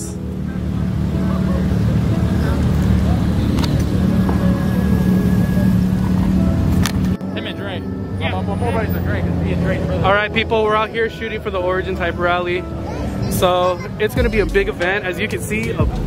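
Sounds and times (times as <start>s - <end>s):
car engines running: 0.0s - 16.0s
music: 0.0s - 16.0s
voices: 0.0s - 16.0s
man talking: 7.2s - 16.0s.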